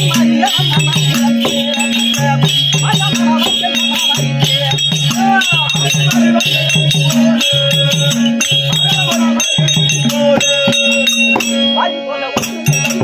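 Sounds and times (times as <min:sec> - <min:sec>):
harmonium melody over drone: 0:00.0 - 0:13.0
jingling rattling percussion: 0:00.0 - 0:13.0.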